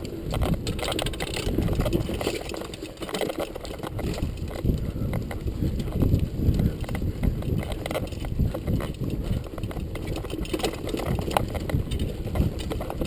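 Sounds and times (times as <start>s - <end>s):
bike rattling and knocking: 0.0s - 13.0s
tyres rolling over dirt and leaves: 0.0s - 13.0s
wind rumble on microphone: 0.0s - 13.0s.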